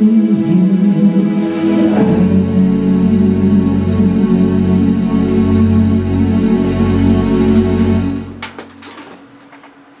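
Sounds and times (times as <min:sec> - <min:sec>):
piano and strings chord: 0:00.0 - 0:08.5.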